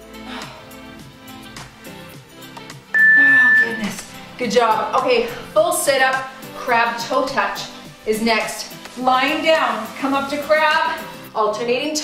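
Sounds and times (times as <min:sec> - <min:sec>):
background music: 0:00.0 - 0:12.0
loud electronic timer beep: 0:03.0 - 0:03.9.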